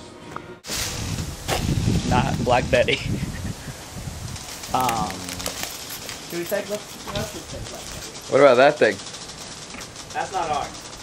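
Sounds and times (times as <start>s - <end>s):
steady outdoor hiss: 0.0s - 11.0s.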